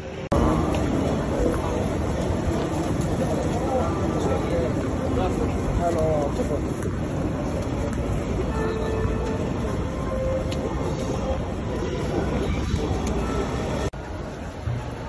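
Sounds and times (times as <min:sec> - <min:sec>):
rail noise: 0:00.0 - 0:15.0
traffic rumble: 0:00.0 - 0:15.0.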